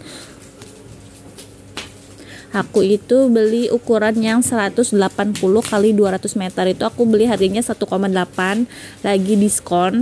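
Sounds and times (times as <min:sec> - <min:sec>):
plastic wrapping rustling and crinkling: 0:00.1 - 0:10.0
sharp plastic crackle: 0:04.2 - 0:09.8.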